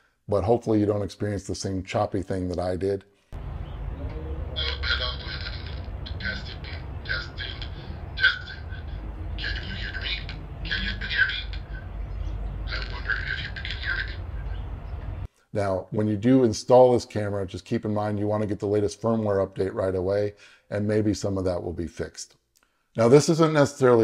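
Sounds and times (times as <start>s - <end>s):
low rumble: 3.4s - 15.3s.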